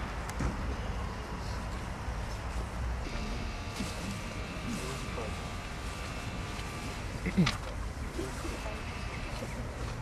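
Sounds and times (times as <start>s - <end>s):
faint background sounds: 0.0s - 10.0s.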